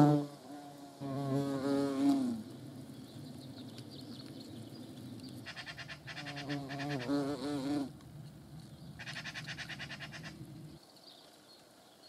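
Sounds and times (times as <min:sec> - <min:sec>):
hornets buzzing: 0:00.0 - 0:02.6, 0:05.5 - 0:08.0.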